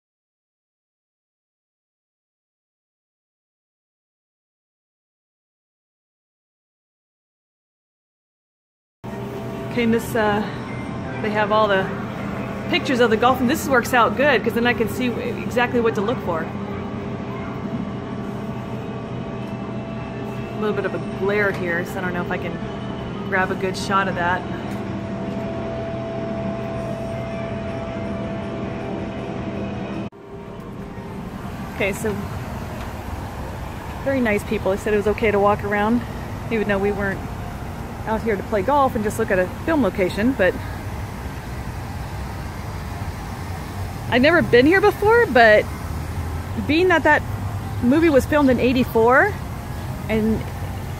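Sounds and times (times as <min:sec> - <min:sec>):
arcade machine hum: 0:09.0 - 0:50.9
low rumble of road traffic: 0:09.0 - 0:50.9
faint steady tones: 0:09.1 - 0:50.9.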